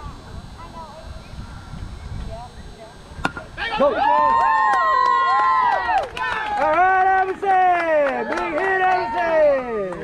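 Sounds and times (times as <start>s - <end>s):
spectators yelling and cheering: 3.6s - 10.0s
sharp claps: 4.4s - 10.0s.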